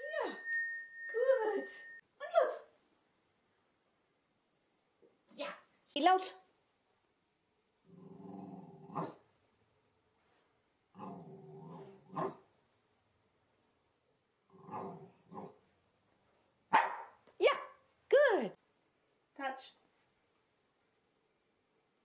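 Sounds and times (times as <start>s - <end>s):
dog growling: 7.8s - 9.2s, 10.9s - 12.4s, 14.5s - 15.6s
dog barking: 12.1s - 12.4s, 16.7s - 17.2s.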